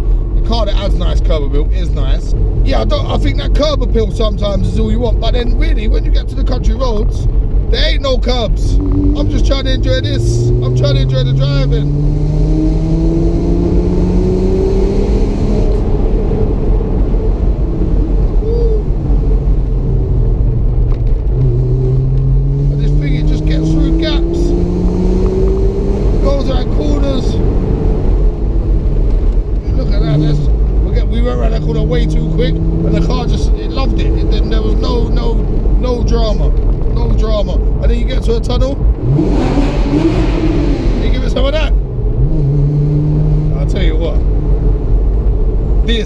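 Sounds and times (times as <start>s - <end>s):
car engine accelerating: 0.0s - 46.0s
wind and road noise: 0.0s - 46.0s.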